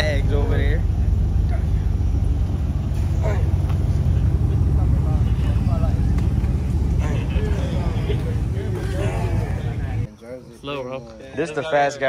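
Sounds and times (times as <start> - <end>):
car engine idling: 0.0 - 10.1
men's voices: 0.0 - 12.0.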